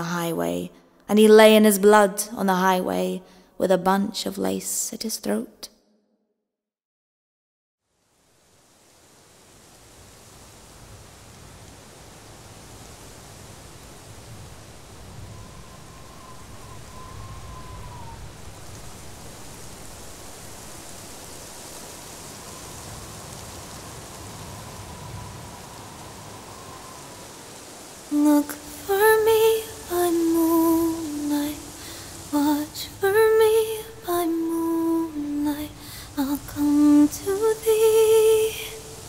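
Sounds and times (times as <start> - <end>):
steady rain: 7.8 - 39.0
faint wavering whistle-like tone: 15.0 - 18.8, 24.7 - 27.3.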